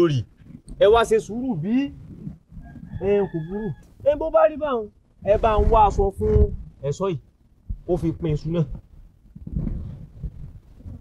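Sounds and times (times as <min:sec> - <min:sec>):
rooster crowing: 0:02.6 - 0:04.1.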